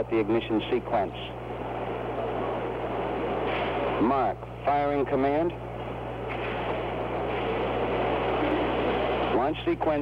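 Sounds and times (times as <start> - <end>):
low constant hum: 0.0 - 10.0.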